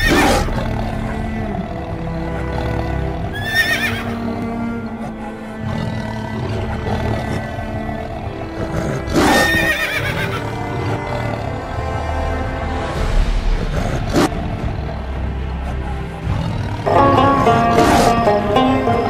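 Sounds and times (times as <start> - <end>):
horse whinnying: 0.0 - 11.5
music with sustained backing: 0.0 - 19.0.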